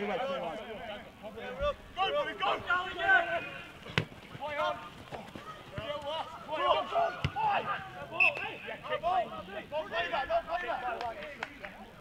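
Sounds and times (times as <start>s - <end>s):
players shouting: 1.3s - 12.0s.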